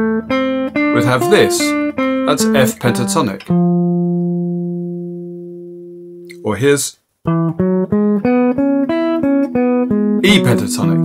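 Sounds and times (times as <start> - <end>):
electric guitar note ringing: 0.0 - 6.4.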